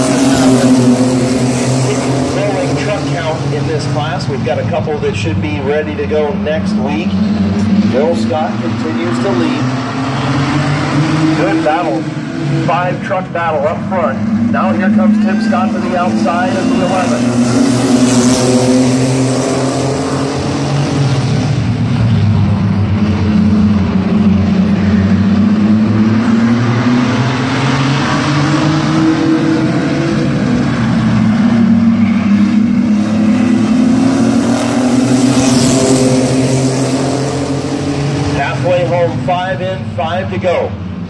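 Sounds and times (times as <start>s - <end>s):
race truck engines revving: 0.0s - 41.0s.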